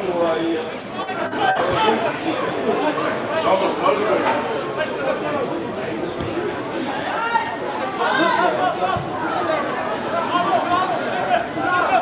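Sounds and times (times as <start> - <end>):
people calling out and chattering: 0.0 - 12.0.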